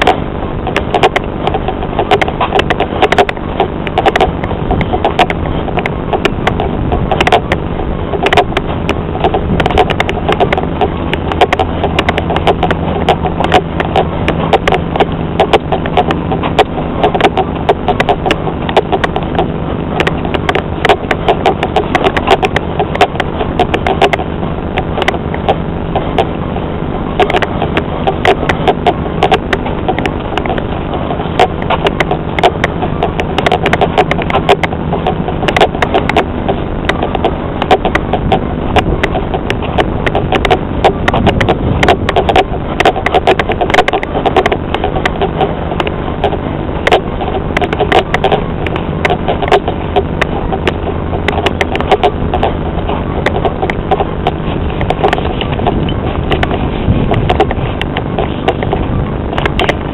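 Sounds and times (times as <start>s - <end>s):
vehicle engine hum: 0.0s - 59.9s
vehicle rattling and knocking: 0.0s - 59.9s.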